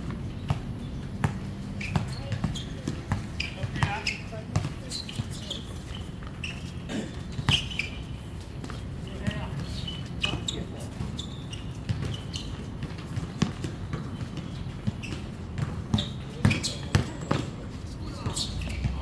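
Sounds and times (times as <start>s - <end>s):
basketball bouncing on hard court: 0.0s - 6.3s, 8.6s - 19.0s.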